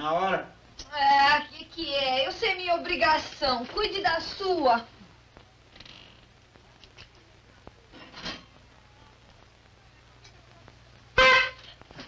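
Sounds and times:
horn honk: 11.2 - 11.8.

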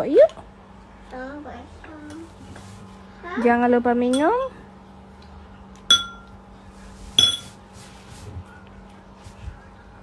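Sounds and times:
spoon clinking on ceramic bowl: 4.1 - 4.4, 5.9 - 6.3, 7.2 - 7.5.

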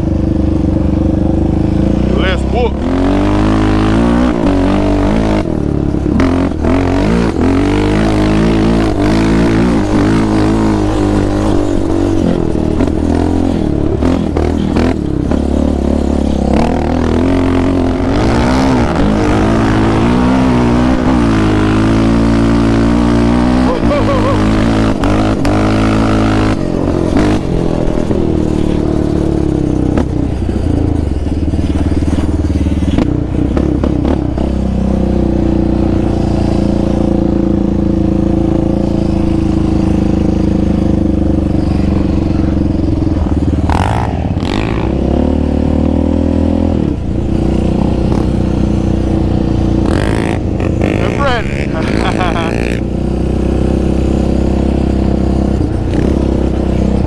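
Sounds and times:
quad engine revving: 0.0 - 57.0.

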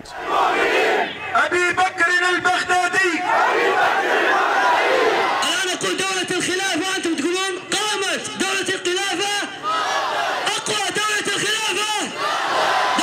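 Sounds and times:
crowd of men chanting: 0.0 - 1.3, 3.2 - 5.4, 9.6 - 10.5, 12.1 - 13.0.

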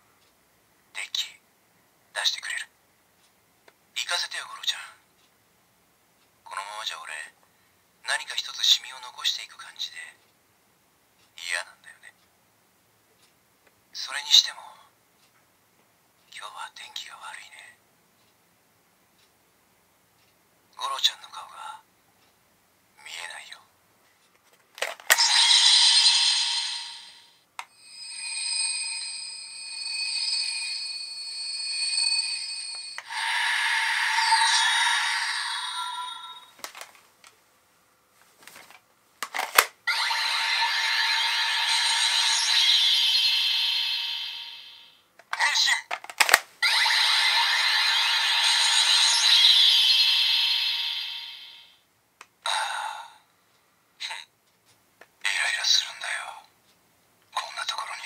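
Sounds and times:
toy belt electronic sound effects: 24.8 - 36.8, 39.6 - 45.0, 46.6 - 51.7
plastic card clicks: 38.4 - 39.7, 45.9 - 46.5.

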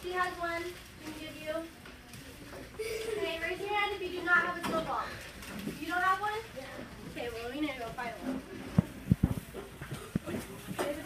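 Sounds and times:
murmur of children's voices: 0.0 - 11.0.

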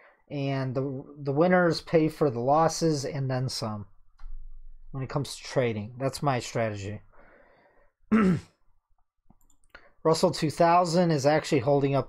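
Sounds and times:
faint breath: 7.1 - 8.0
man clearing throat: 8.1 - 8.6.

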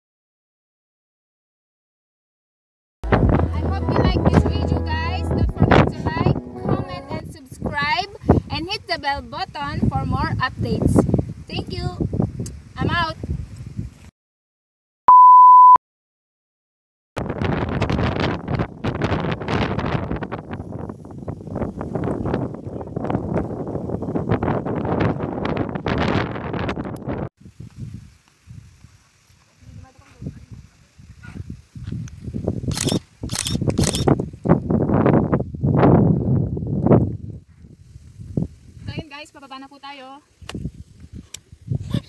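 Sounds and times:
wind buffeting a microphone: 3.0 - 14.1, 17.2 - 29.0, 29.6 - 39.3, 40.3 - 42.0
electronic beep: 15.1 - 15.8.

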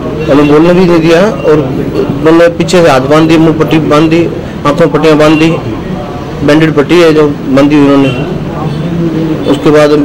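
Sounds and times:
man speaking: 0.1 - 10.0.

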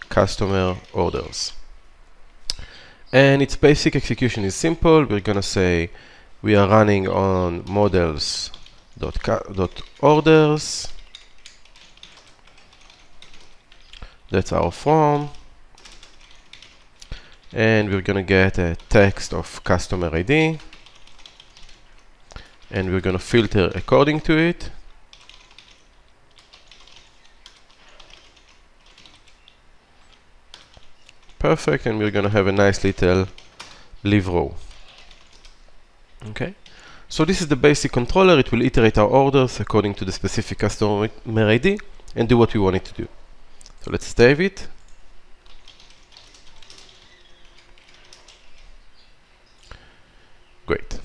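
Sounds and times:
computer keyboard typing: 7.6 - 14.4, 15.1 - 17.6, 20.3 - 24.2, 25.1 - 31.4, 32.5 - 33.9, 34.6 - 35.6, 44.8 - 48.7.

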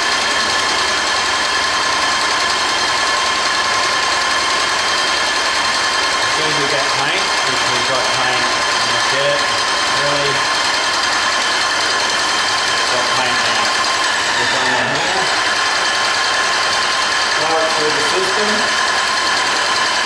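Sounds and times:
paint sprayer pump whining: 0.0 - 20.0.

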